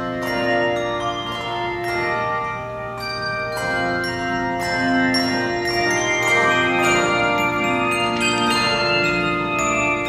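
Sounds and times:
handbell choir ringing: 0.0 - 10.0.

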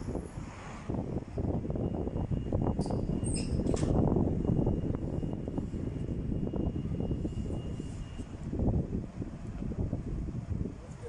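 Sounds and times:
cars passing close by: 0.0 - 2.8.

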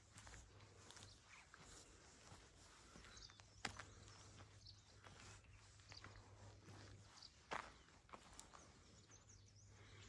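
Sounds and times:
faint footsteps on a path: 0.0 - 10.0
faint bird chirps: 0.8 - 10.0.

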